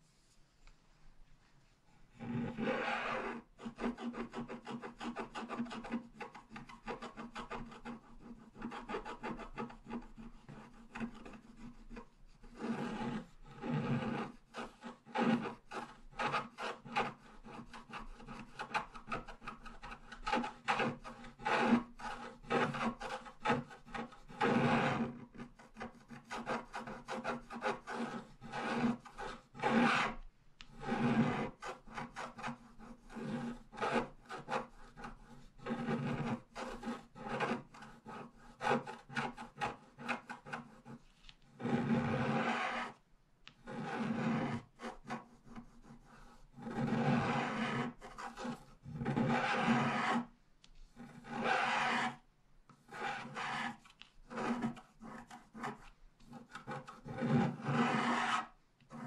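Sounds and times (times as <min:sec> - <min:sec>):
stylus scratching card: 0:02.2 - 0:50.3, 0:51.0 - 0:52.2, 0:52.8 - 0:59.0.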